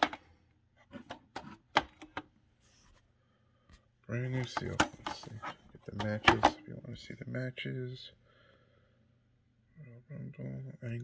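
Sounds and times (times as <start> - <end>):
plastic cases clicking: 4.4 - 6.6.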